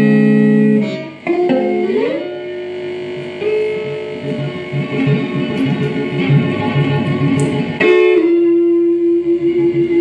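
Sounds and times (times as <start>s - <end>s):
electric guitar blues lead: 0.0s - 10.0s.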